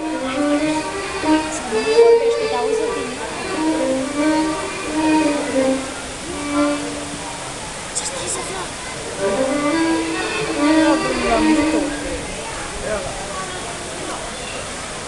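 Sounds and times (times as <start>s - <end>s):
live acoustic sliding melody: 0.0s - 12.8s
people talking: 0.0s - 15.0s.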